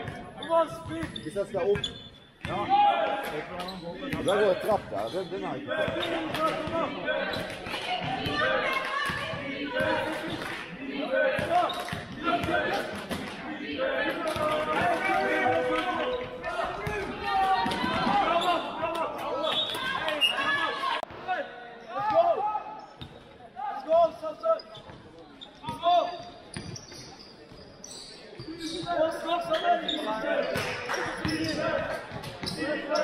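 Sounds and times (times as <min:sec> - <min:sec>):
players shouting and calling: 0:00.0 - 0:33.0.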